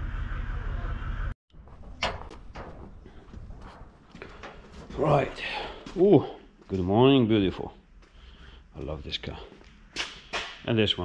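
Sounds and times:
low workshop hum: 0:00.0 - 0:11.0.

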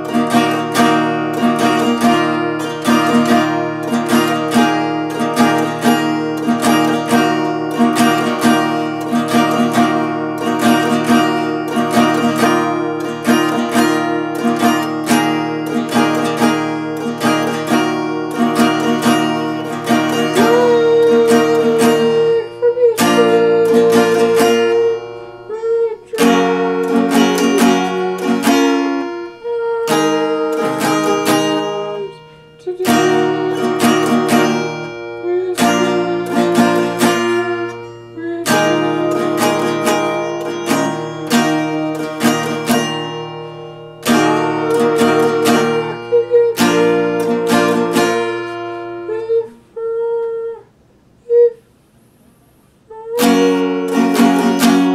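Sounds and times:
acoustic guitar strumming: 0:00.0 - 0:54.9.

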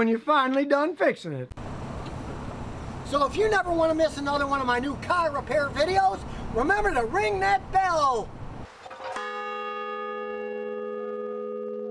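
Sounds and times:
large bell ringing: 0:09.1 - 0:11.9.

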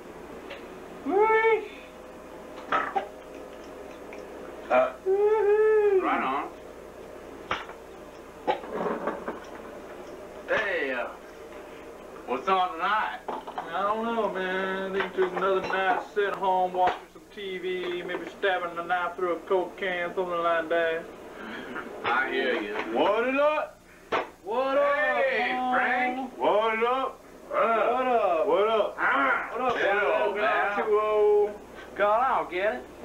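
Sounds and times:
men making drawn-out vocal sounds: 0:04.6 - 0:06.6, 0:28.9 - 0:31.5
person making wordless vocal sounds: 0:04.7 - 0:06.5.

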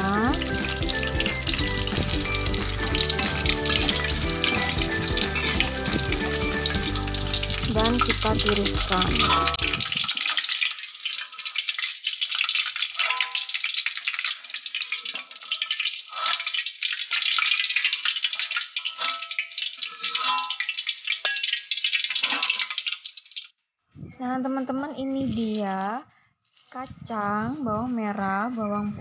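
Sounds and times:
oil crackling and sizzling: 0:00.0 - 0:23.6, 0:25.1 - 0:25.7, 0:26.4 - 0:26.8
metal spatula scooping in wok: 0:00.4 - 0:23.0.

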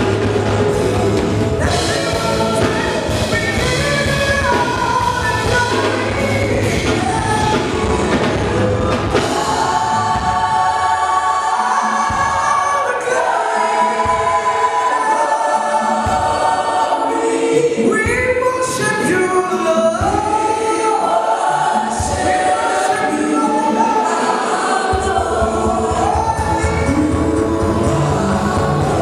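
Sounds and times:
band playing: 0:00.0 - 0:29.0
voices singing together: 0:00.0 - 0:29.0.

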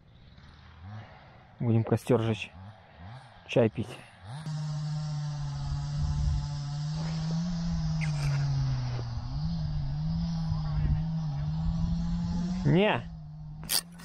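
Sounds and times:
chainsaw cutting wood: 0:04.2 - 0:14.0.

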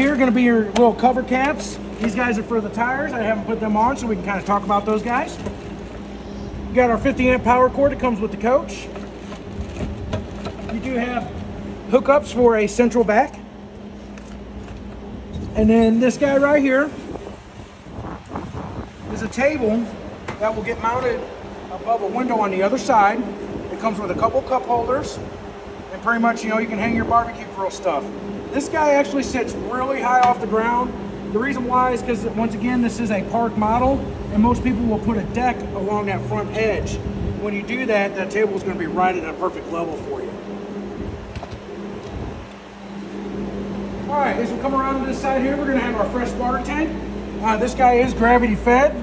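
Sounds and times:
steady low hum: 0:00.0 - 0:49.0
wind rumble on microphone: 0:05.4 - 0:08.4, 0:09.4 - 0:11.8, 0:15.0 - 0:22.0, 0:22.6 - 0:26.0, 0:26.6 - 0:27.7, 0:32.6 - 0:37.8, 0:40.0 - 0:43.9.

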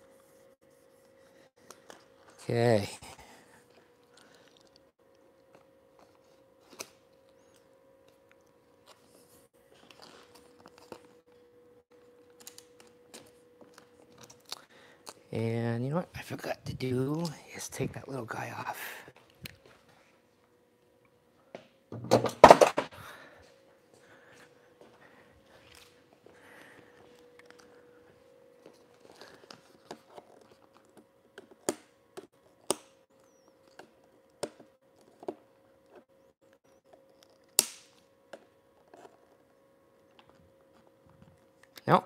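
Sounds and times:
faint steady hum: 0:00.0 - 0:42.0.

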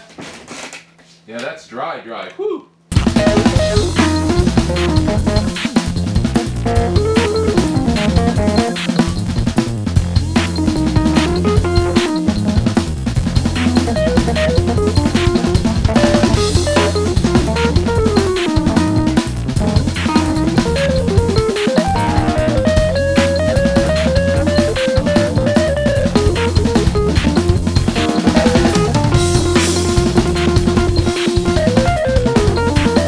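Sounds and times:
drum kit: 0:02.9 - 0:33.0
low bass line: 0:02.9 - 0:33.0
melody line: 0:21.7 - 0:26.7.

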